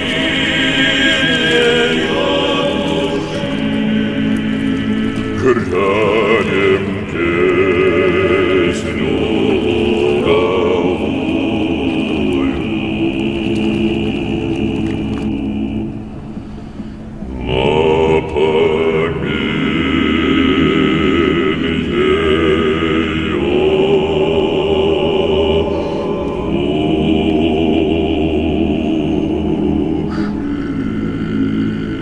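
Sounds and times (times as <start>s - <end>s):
choir singing slow folk song: 0.0s - 32.0s.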